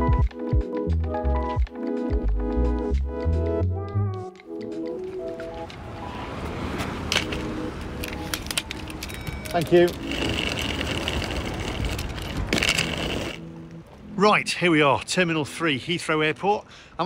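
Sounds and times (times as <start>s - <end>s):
suitcase wheels rolling on tarmac: 4.9s - 14.0s.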